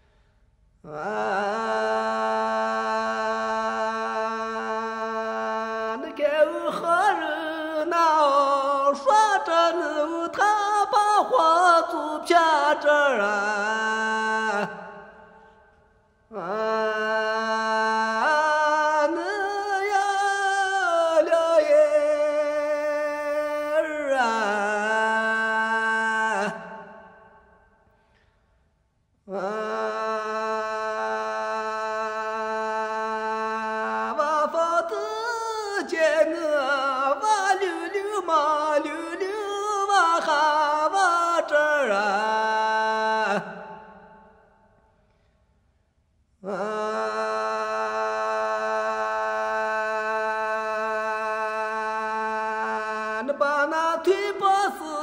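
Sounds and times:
man singing unaccompanied: 0.9 - 15.0, 16.3 - 26.9, 29.3 - 44.2, 46.4 - 55.0.

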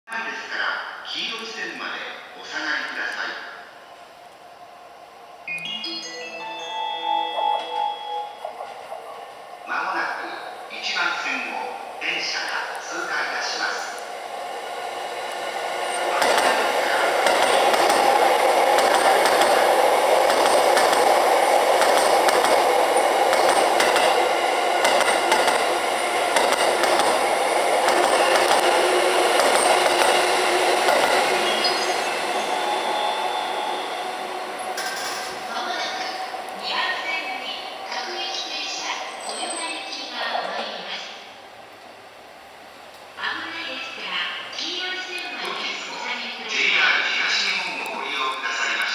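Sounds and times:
electric train passing at speed: 0.3 - 48.9.

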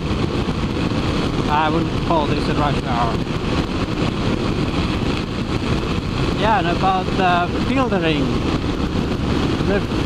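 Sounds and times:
motorcycle engine cruising: 0.0 - 10.0
road and wind rush: 0.0 - 10.0.

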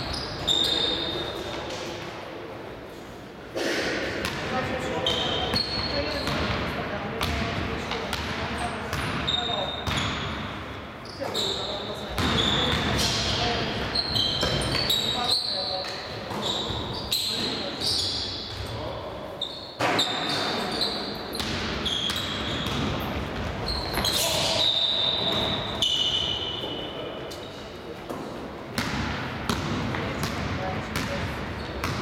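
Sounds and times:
sneakers squeaking on court: 0.0 - 1.7, 4.2 - 32.0
basketball bouncing: 21.4 - 23.5, 28.8 - 32.0.

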